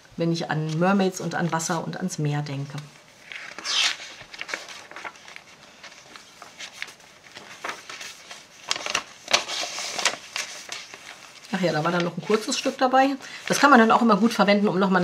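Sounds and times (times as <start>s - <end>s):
paper ticks and crackles: 2.7s - 14.0s
paper pages rustling: 3.0s - 14.6s.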